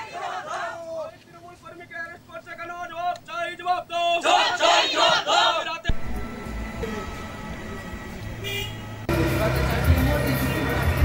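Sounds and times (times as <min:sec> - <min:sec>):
crowd chanting a slogan: 0:00.0 - 0:01.1, 0:04.0 - 0:05.9.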